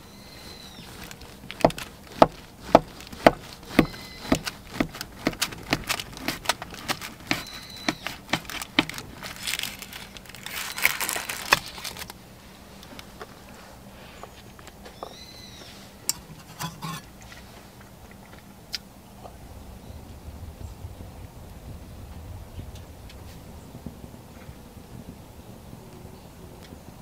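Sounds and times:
knife cutting crisp pastry: 0:01.0 - 0:09.8.

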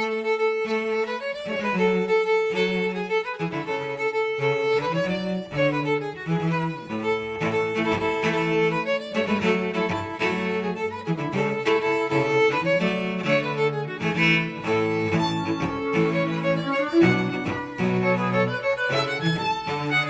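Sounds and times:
string quartet playing: 0:00.0 - 0:20.0.

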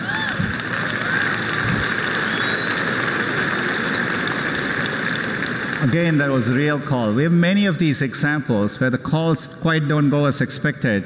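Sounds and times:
people whooping: 0:00.0 - 0:06.5
audience applauding: 0:00.0 - 0:07.2.

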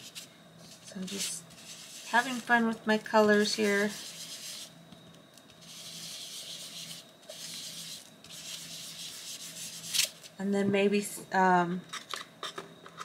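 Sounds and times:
chalk pastel rubbing on paper: 0:01.0 - 0:02.5, 0:03.4 - 0:04.7, 0:05.6 - 0:10.1.

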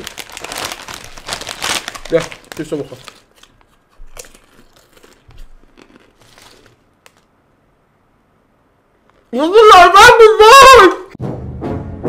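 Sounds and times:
foil chip bag crinkling: 0:00.0 - 0:07.3
potato chips crunching: 0:00.0 - 0:07.3.

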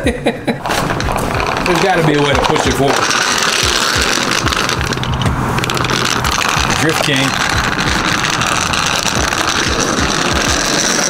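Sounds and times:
caster wheels rolling rattle: 0:00.6 - 0:11.0.

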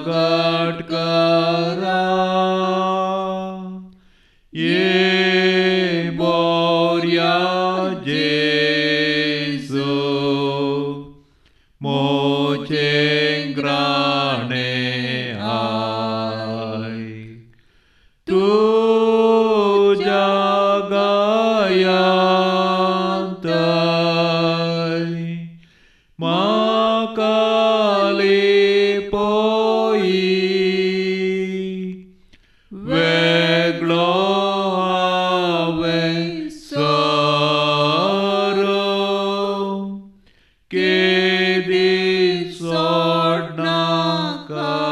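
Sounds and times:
person chanting a hymn: 0:00.0 - 0:03.9, 0:04.6 - 0:11.2, 0:11.8 - 0:17.4, 0:18.3 - 0:25.6, 0:26.2 - 0:32.0, 0:32.7 - 0:40.1, 0:40.7 - 0:44.9.

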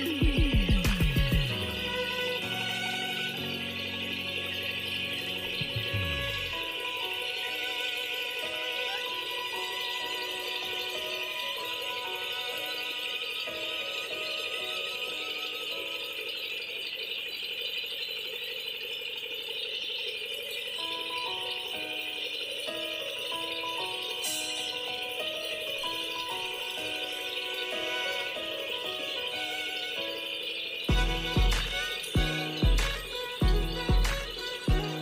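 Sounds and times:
melody of held notes: 0:00.0 - 0:16.9, 0:20.8 - 0:35.0
high rattling shimmer: 0:00.9 - 0:35.0.

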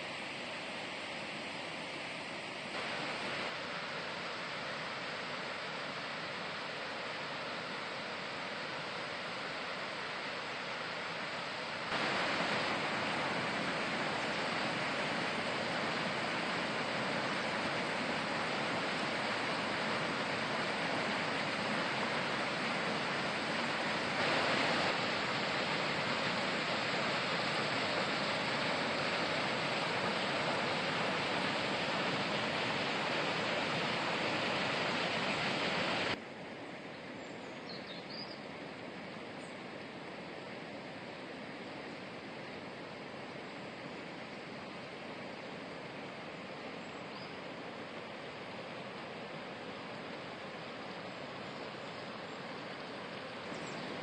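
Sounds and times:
water rushing over waterfalls: 0:00.0 - 0:36.2, 0:38.5 - 0:54.0.

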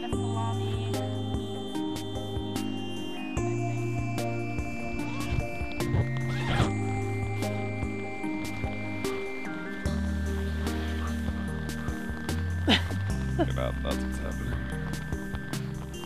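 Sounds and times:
music of long held tones: 0:00.0 - 0:16.0
gliding squeal: 0:04.6 - 0:12.3.

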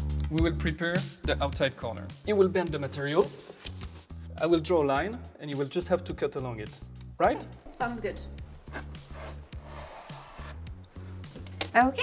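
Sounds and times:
soft background music: 0:00.0 - 0:12.0
pencil scratching on vinyl: 0:08.6 - 0:10.8.

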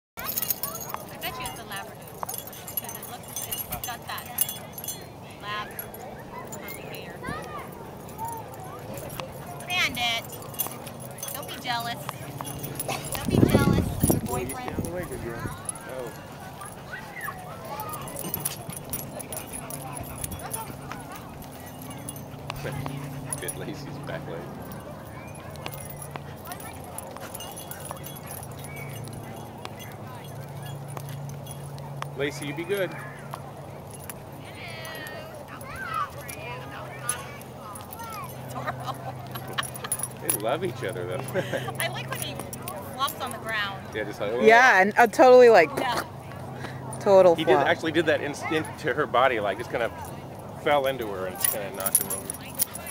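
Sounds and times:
people talking: 0:00.2 - 0:31.1, 0:34.3 - 0:52.9
dogs wrestling on grass: 0:00.2 - 0:32.2.

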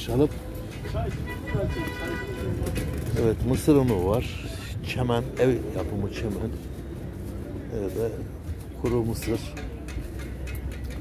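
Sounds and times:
distant voices of shoppers: 0:00.0 - 0:11.0.

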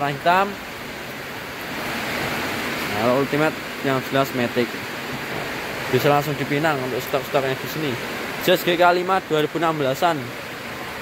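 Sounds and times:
steady rushing hiss: 0:00.0 - 0:11.0.

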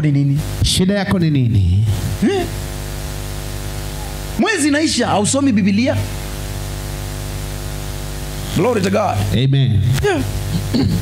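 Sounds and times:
electrical hum with hiss: 0:00.0 - 0:11.0.

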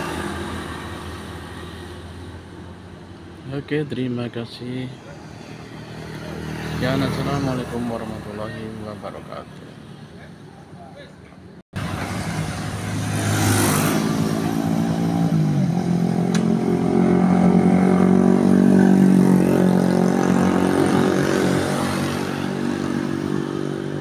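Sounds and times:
motorcycle engines running: 0:11.8 - 0:24.0.

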